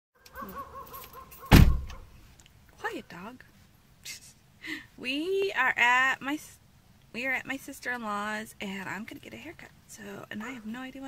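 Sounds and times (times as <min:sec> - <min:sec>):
loud thump: 0:01.5 - 0:02.0.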